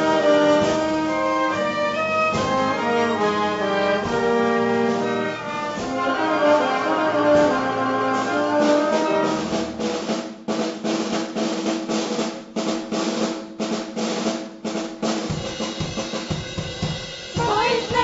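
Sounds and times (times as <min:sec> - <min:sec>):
orchestra holding chords: 0:00.0 - 0:10.0
snare and bass drum strokes: 0:00.0 - 0:18.0
woman singing: 0:17.4 - 0:18.0.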